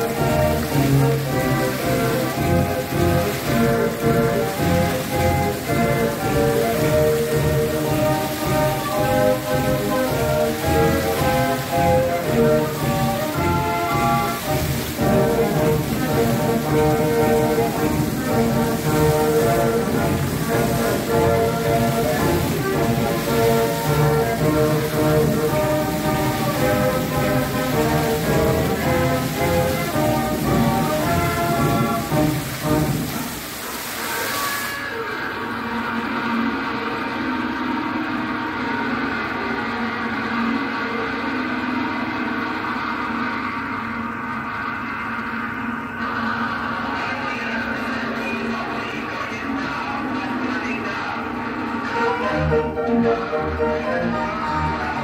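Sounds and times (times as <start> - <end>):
fountain water splashing: 0.0 - 55.0
recorded show music: 0.0 - 55.0.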